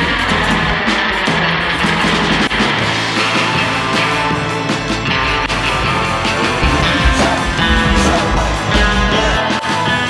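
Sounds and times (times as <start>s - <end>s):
electric guitar chords: 0.0s - 10.0s
drum hits: 4.8s - 9.4s.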